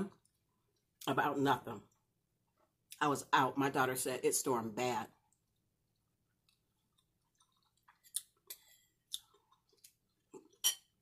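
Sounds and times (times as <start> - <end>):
person chewing food: 5.3 - 11.0.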